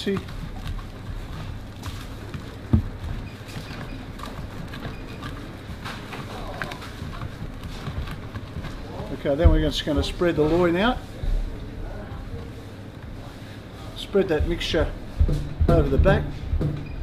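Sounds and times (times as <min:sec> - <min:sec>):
hands mixing dry stuffing: 0:00.0 - 0:16.4
steady low background hum: 0:00.0 - 0:17.0.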